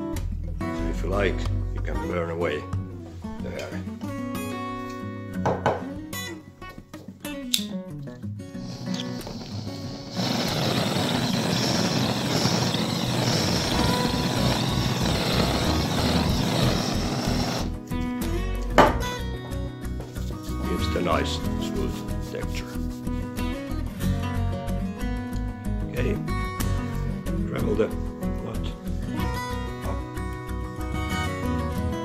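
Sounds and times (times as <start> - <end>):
acoustic guitar music: 2.5 - 32.0
gas lighter flame hissing: 8.6 - 17.8.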